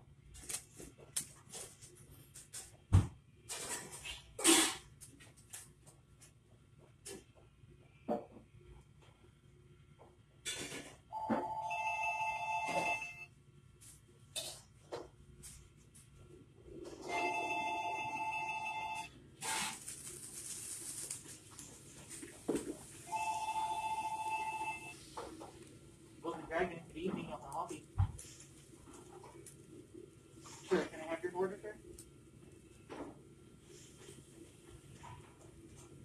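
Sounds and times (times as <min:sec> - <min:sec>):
telephone ringing: 0:11.1 - 0:13.3, 0:17.0 - 0:19.1, 0:23.0 - 0:25.1.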